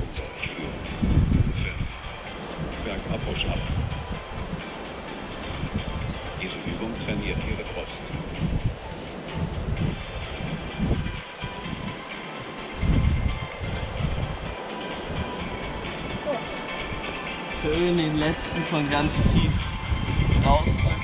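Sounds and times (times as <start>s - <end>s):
faint background music: 0.0s - 21.0s
wind buffeting microphone: 0.0s - 21.0s.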